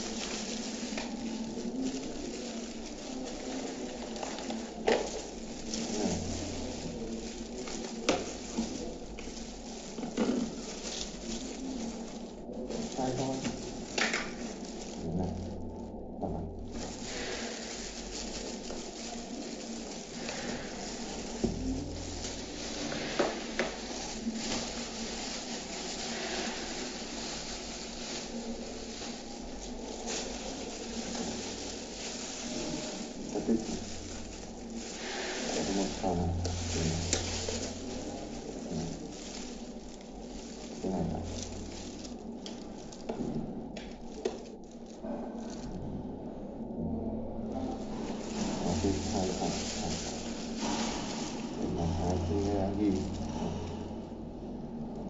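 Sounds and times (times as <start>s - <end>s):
steady hiss: 0.0s - 44.6s, 47.0s - 55.0s
plastic gloves crinkling: 0.0s - 55.0s.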